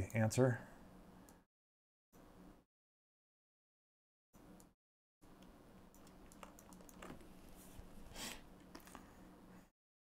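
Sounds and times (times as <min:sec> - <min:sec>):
computer keyboard clicks: 0:06.0 - 0:07.2.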